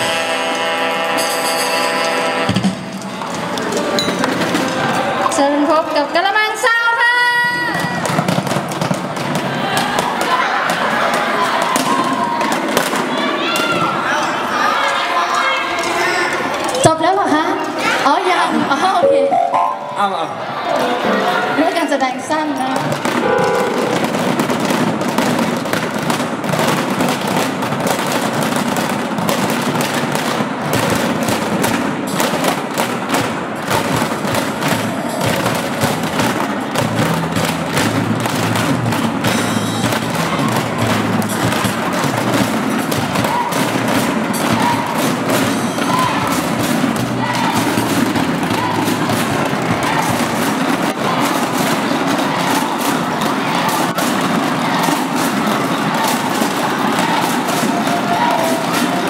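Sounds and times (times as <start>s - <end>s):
group drumming on basins: 0.0s - 5.6s, 7.6s - 13.2s, 19.3s - 59.0s.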